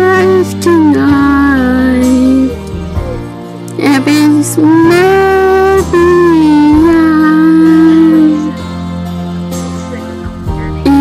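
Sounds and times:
soft musical accompaniment: 0.0s - 11.0s.

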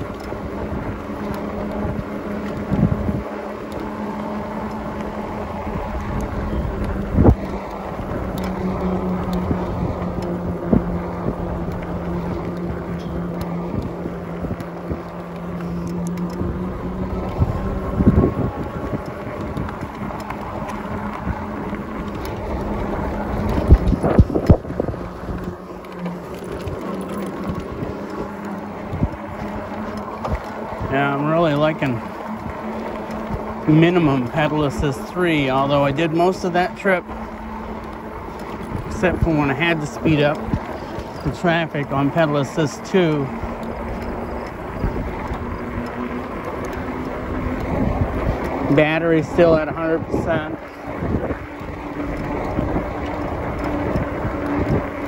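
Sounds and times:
electric bike motor whining: 0.0s - 55.0s
tyre noise: 0.0s - 55.0s
wind buffeting microphone: 0.0s - 55.0s.

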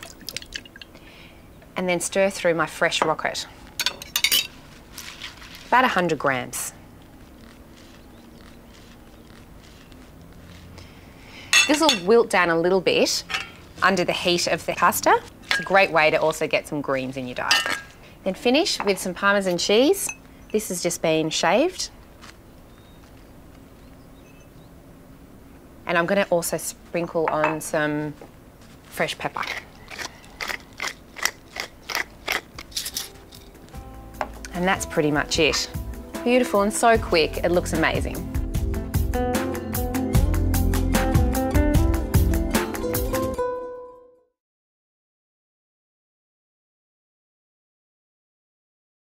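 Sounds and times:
soft rustling of leaves: 0.0s - 27.0s, 27.6s - 38.0s
pepper mill grinding: 7.3s - 10.7s, 29.0s - 33.8s.

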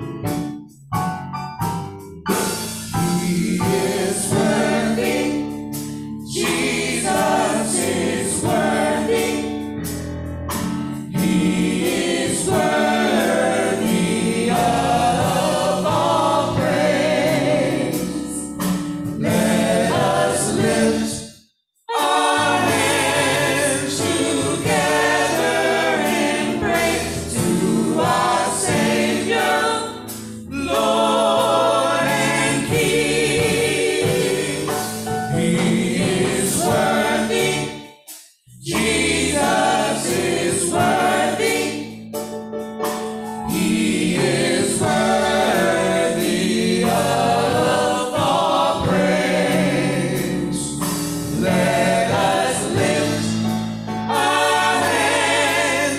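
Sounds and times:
gospel vocal group singing: 2.3s - 42.3s, 43.0s - 55.9s.

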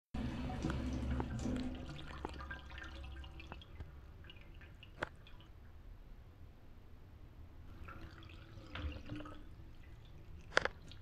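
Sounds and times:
water dripping and trickling: 0.2s - 5.9s, 7.7s - 11.0s.

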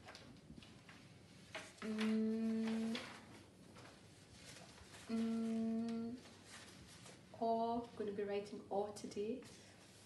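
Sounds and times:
woman humming: 1.8s - 3.1s, 5.1s - 6.3s.

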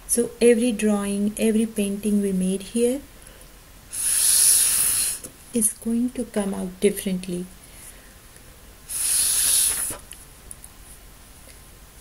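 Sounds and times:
breath blown through a straw: 3.9s - 5.3s, 8.9s - 10.0s.

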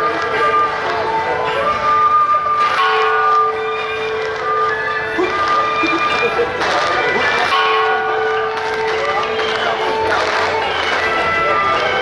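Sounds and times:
crowd voices: 0.0s - 12.0s
melody of held notes: 0.0s - 12.0s.

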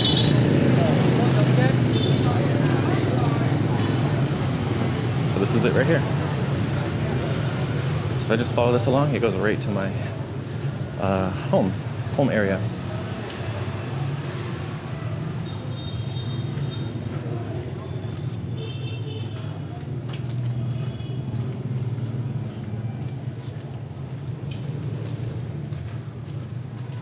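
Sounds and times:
distant city traffic rumble: 0.0s - 27.0s.

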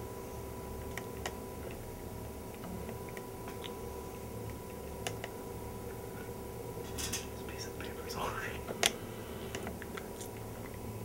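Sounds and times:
person whispering: 7.3s - 8.7s.

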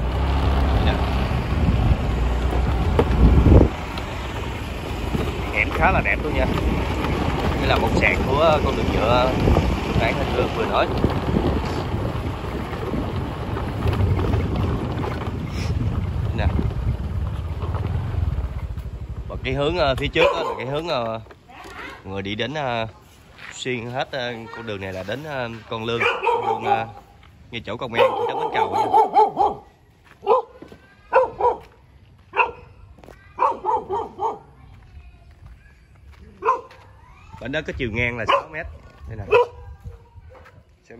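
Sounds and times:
wind buffeting microphone: 0.0s - 21.0s, 31.1s - 40.9s
dog barking: 20.2s - 20.8s, 25.9s - 27.1s, 27.9s - 31.7s, 32.3s - 32.8s, 33.4s - 34.6s, 36.4s - 36.8s, 38.2s - 40.6s.

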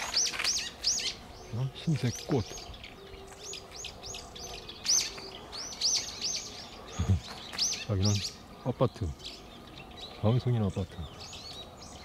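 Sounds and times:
small songbirds chirping: 0.0s - 12.0s.

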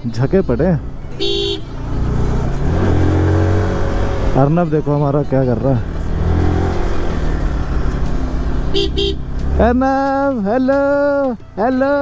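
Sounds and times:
motorcycle engine low rumble: 0.0s - 12.0s
road noise: 0.0s - 12.0s.

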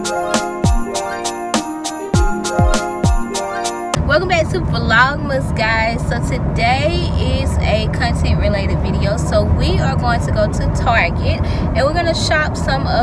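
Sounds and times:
woman talking: 4.0s - 13.0s.

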